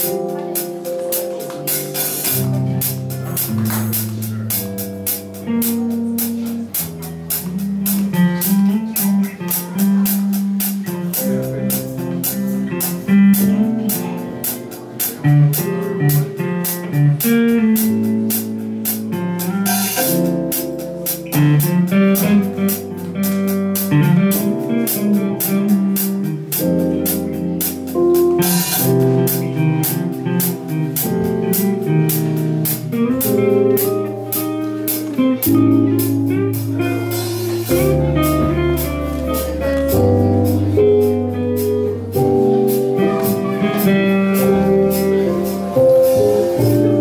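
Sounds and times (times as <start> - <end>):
bass line: 0.0 - 47.0
drum kit cymbal beat: 0.0 - 47.0
electric guitar: 0.0 - 47.0
keyboard: 0.0 - 47.0.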